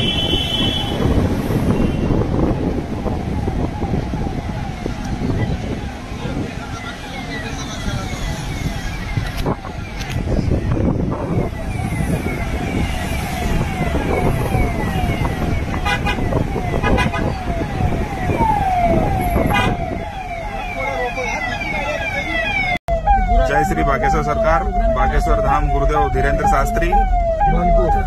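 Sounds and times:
rumble of moving cars: 0:00.0 - 0:28.0
vehicle siren falling sweep: 0:02.2 - 0:28.0.

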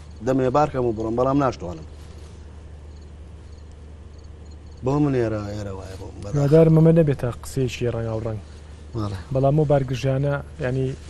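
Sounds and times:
steady low hum: 0:00.0 - 0:11.0
man talking: 0:00.2 - 0:01.9, 0:04.8 - 0:11.0.

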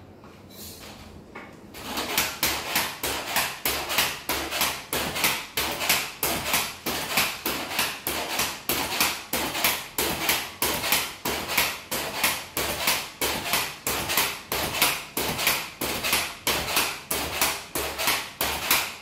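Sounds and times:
pogo stick bouncing on tiles: 0:01.8 - 0:19.0.

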